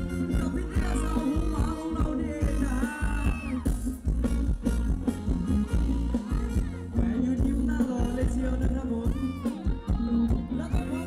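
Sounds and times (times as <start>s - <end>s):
live band dance music: 0.0s - 11.0s
quick drum beats: 0.0s - 11.0s.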